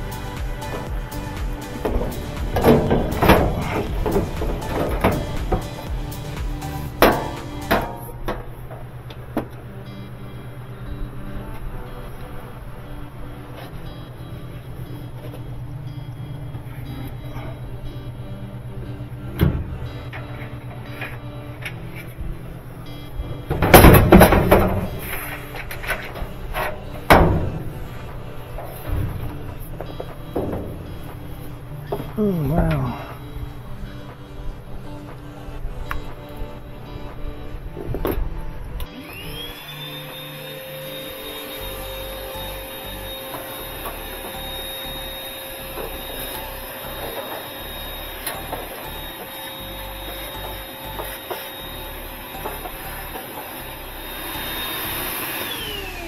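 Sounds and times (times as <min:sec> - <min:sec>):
background music: 0:00.0 - 0:56.0
sheet-metal panels clunking: 0:01.7 - 0:06.2, 0:06.9 - 0:08.6, 0:23.5 - 0:32.1.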